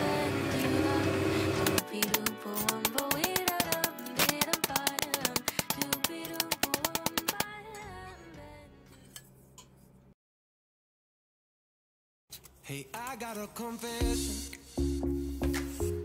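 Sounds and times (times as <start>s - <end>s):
background music: 0.0s - 9.2s, 13.2s - 16.0s.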